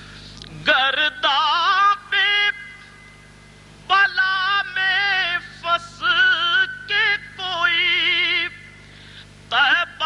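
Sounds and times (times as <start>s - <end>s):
steady low hum: 0.0s - 10.0s
man singing solo: 3.9s - 8.6s, 9.5s - 10.0s.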